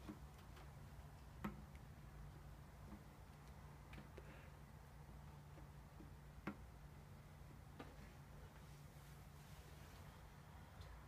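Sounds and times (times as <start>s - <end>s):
faint clicks and knocks: 0.0s - 4.4s.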